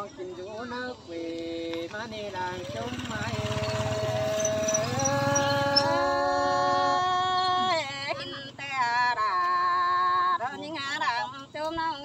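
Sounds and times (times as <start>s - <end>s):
person singing a long held note: 4.9s - 7.7s.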